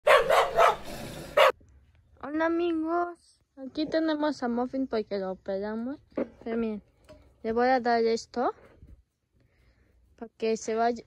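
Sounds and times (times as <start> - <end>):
dog barking: 0.0 - 1.6.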